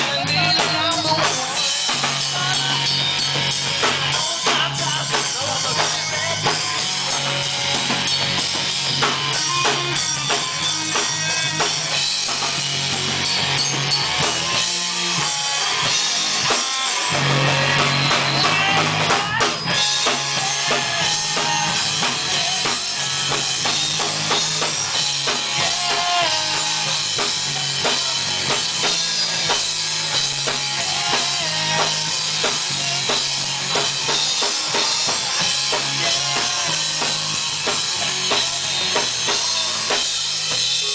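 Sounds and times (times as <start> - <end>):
person singing: 0.0 - 3.0, 3.9 - 8.0, 15.7 - 29.7, 30.5 - 40.9
bass guitar: 0.0 - 40.9
distorted electric guitar: 0.0 - 40.9
drum kit: 0.0 - 40.9.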